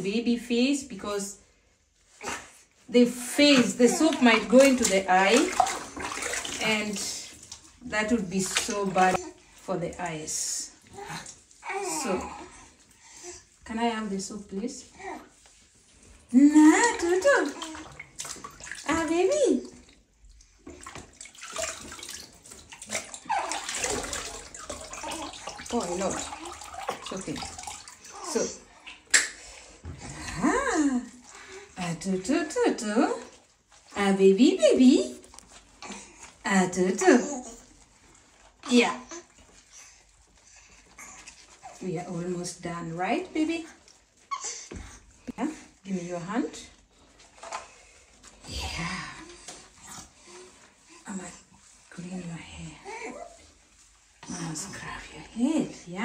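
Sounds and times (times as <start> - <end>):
washcloth squeezed in water: 2.0 - 56.0
water splashing in a plastic tub: 2.2 - 13.0, 15.6 - 56.0
baby whimpering: 11.0 - 12.6.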